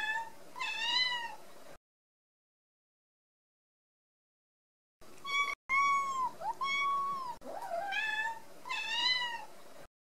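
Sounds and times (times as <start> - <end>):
cat meowing: 5.2 - 9.5.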